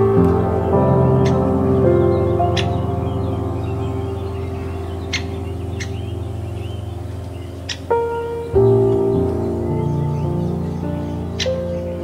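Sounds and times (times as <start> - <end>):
ambient music with sustained chords: 0.0 - 12.0
faint bird chirps: 1.2 - 12.0.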